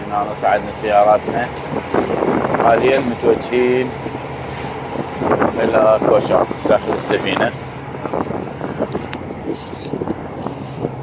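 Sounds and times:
people talking: 0.0s - 1.6s, 2.6s - 4.0s, 5.5s - 7.6s
ferry engine hum: 0.0s - 11.0s.

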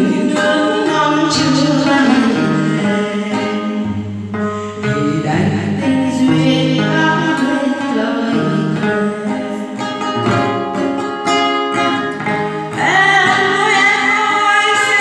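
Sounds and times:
woman singing into microphone: 0.0s - 11.1s, 11.7s - 15.0s
acoustic guitar: 0.0s - 15.0s.

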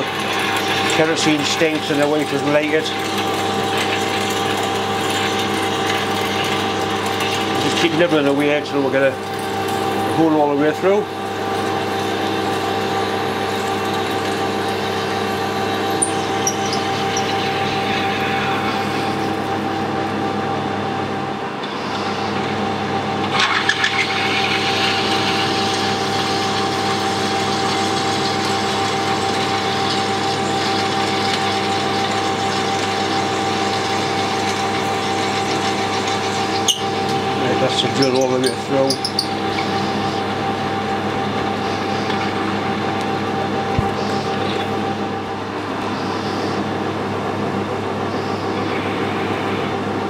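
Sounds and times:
lathe motor humming: 0.0s - 50.0s.

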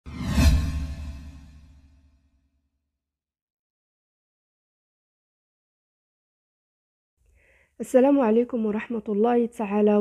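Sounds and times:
whoosh sound effect: 0.0s - 1.9s.

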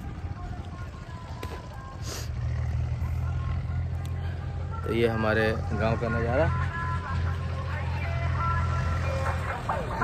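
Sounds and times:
tractor engine rumble: 0.0s - 10.0s.

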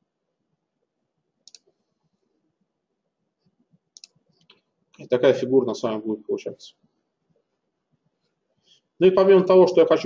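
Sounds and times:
computer mouse clicks: 1.4s - 1.8s, 3.9s - 4.7s.

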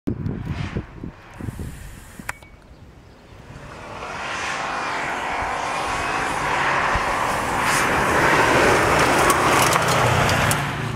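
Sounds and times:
rally car engine driven hard: 3.3s - 10.9s.

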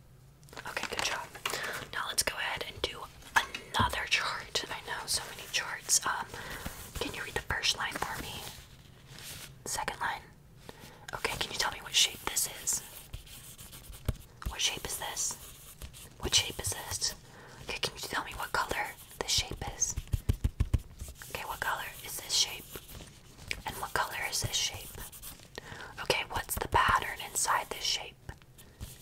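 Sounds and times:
woman whispering: 0.6s - 8.6s, 9.7s - 10.4s, 11.1s - 13.0s, 14.5s - 15.4s, 16.2s - 20.0s, 21.2s - 22.8s, 23.5s - 25.0s, 25.9s - 28.4s.

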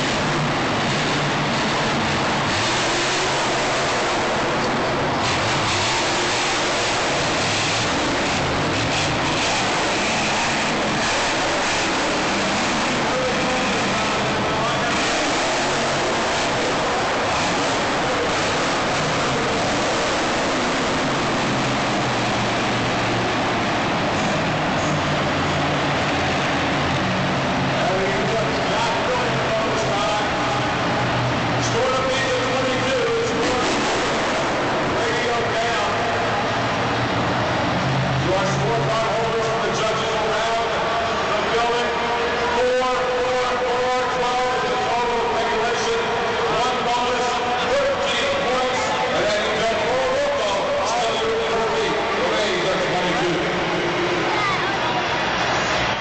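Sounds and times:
monster truck engine running loud: 0.0s - 56.0s.

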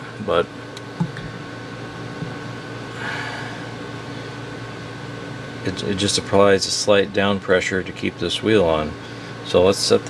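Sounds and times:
low room hum: 0.0s - 10.0s
person exhaling softly: 2.9s - 3.7s.

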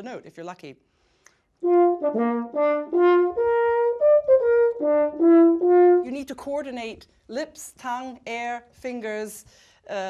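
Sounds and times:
french horn melody: 1.6s - 6.2s.

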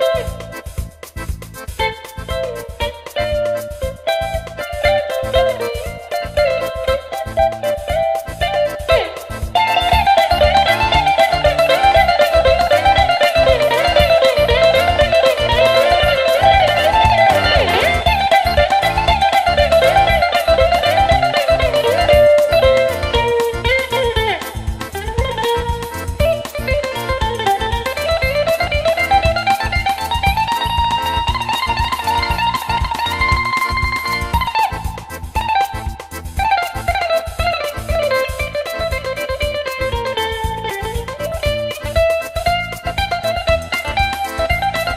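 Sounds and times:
bouzouki picked melody: 0.0s - 44.9s.

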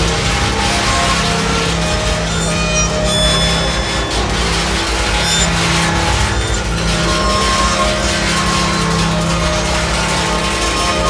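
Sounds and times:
dense wall of noise: 0.0s - 11.0s
steady low drone: 0.0s - 11.0s
sustained high tones: 0.0s - 11.0s.

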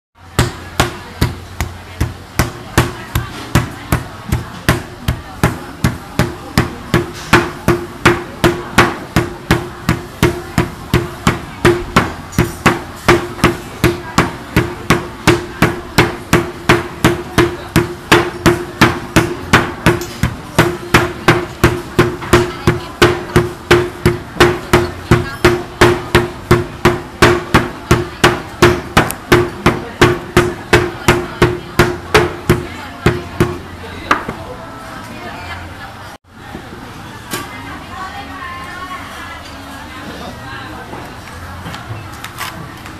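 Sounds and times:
wooden mallets pounding on board: 0.3s - 34.4s.

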